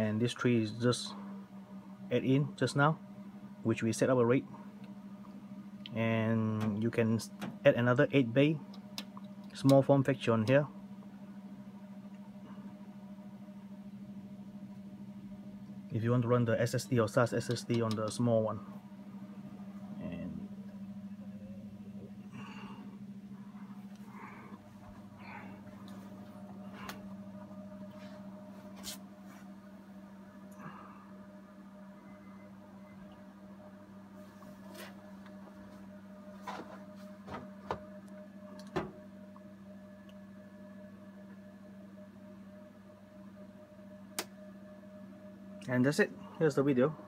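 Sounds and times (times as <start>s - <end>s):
server fans humming: 0.0s - 47.0s.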